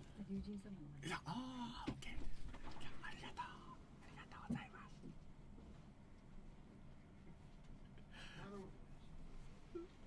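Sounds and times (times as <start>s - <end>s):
soft whispery speech: 0.1s - 5.1s.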